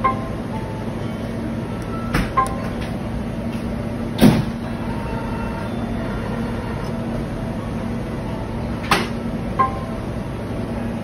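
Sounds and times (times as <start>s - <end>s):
copier humming: 0.0s - 11.0s.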